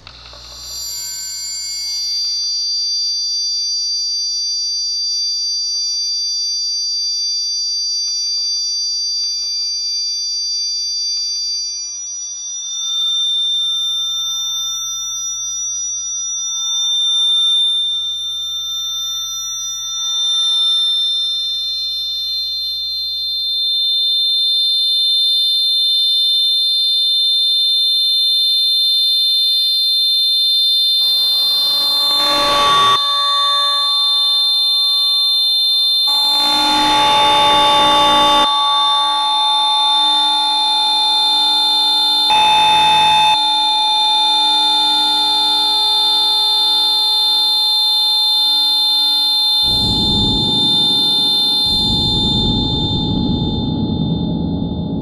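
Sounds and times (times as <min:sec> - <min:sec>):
shrill high electronic tones: 0:00.6 - 0:03.1, 0:11.8 - 0:26.4, 0:27.3 - 0:55.0
lower steady tones: 0:29.9 - 0:55.0.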